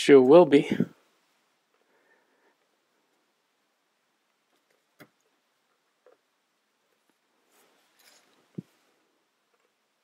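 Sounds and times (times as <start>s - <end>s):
light scraping rustle: 7.4s - 8.9s.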